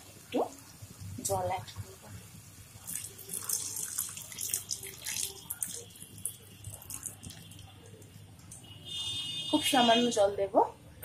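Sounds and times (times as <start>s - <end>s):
water pouring into gravy: 2.8s - 8.6s.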